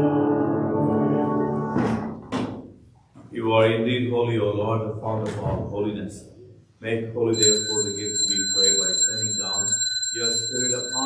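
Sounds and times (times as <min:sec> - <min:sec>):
man praying: 0:06.8 - 0:11.0
altar bell ringing: 0:07.4 - 0:11.0.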